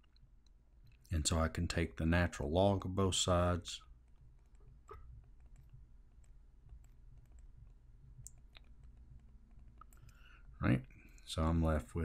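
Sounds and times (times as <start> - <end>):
faint low hum: 0.0 - 12.0
stylus tapping on tablet: 4.1 - 10.2.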